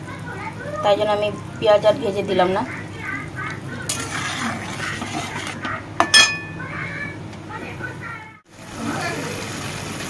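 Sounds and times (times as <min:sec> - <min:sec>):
spatula stirring and scraping: 0:03.4 - 0:06.5
metal spatula clinking on wok: 0:06.0 - 0:06.6.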